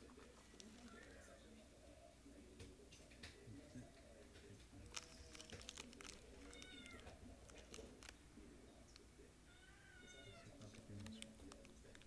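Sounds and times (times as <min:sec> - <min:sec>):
foil wrapper crinkling: 0:04.8 - 0:08.2.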